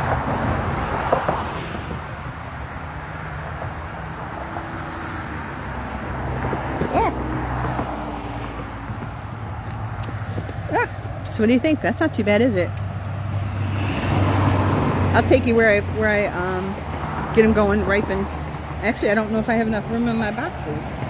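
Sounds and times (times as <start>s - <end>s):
road traffic: 0.0s - 21.0s.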